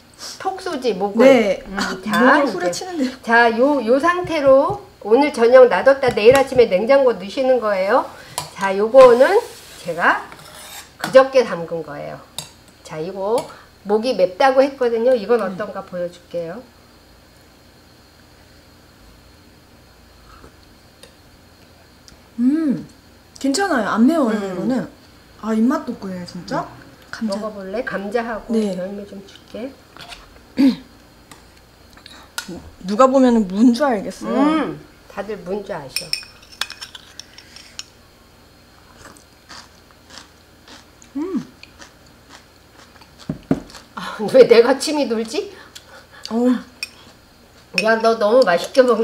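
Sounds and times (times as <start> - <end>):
faint hum and hiss: 0.0 - 49.0
person chewing crunchy food: 38.9 - 44.0.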